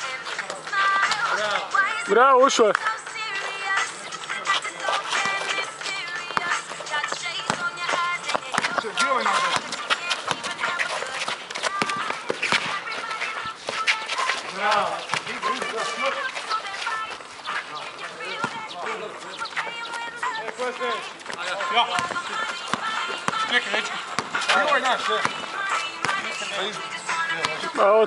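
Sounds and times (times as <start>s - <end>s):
music playing: 0.0s - 28.0s
voices: 0.0s - 28.0s.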